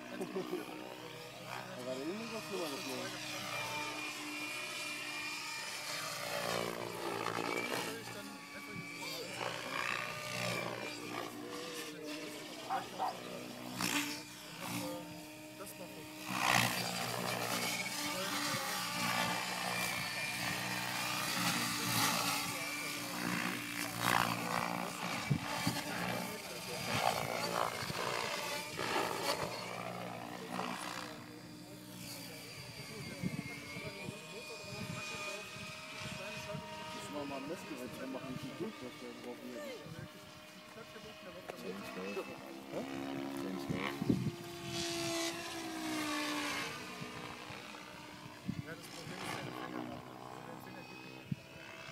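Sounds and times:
model helicopter rotor whine: 0.0s - 51.9s.

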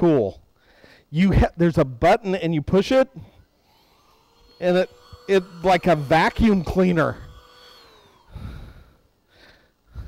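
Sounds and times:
small electric motor winding down: 3.4s - 9.1s.

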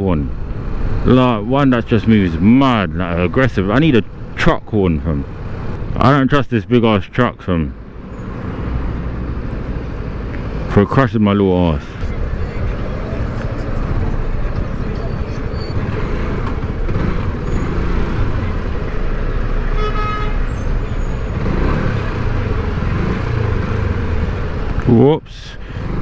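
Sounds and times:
wind and road noise: 0.0s - 26.0s
vehicle horn toot: 19.7s - 20.5s.

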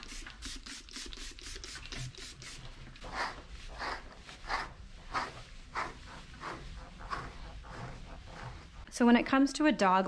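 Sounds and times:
brush raked through dog fur: 2.6s - 8.9s.

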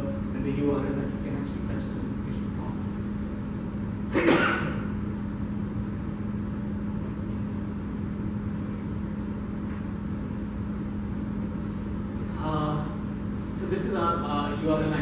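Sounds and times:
low drone room hum: 0.0s - 15.0s.

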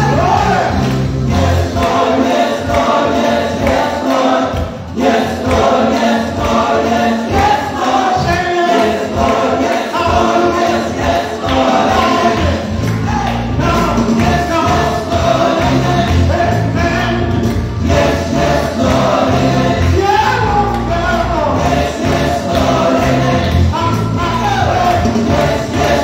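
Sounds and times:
group singing gospel song: 0.0s - 26.0s
music with steady bass line: 0.0s - 26.0s.

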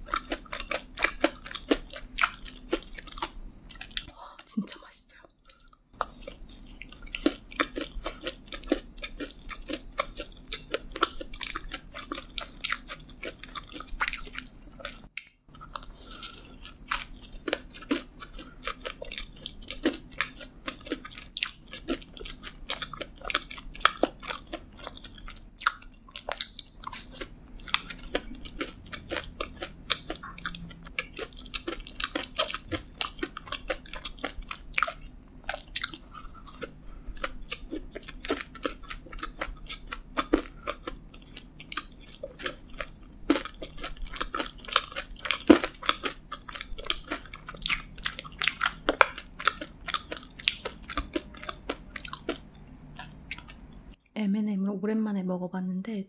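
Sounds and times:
chewing crunchy donut: 0.0s - 54.1s.

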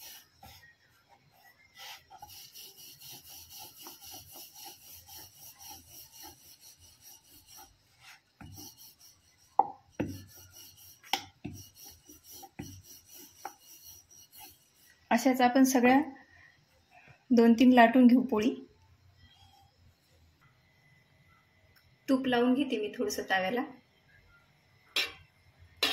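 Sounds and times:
rolling pin rubbing over dough: 0.0s - 16.0s.

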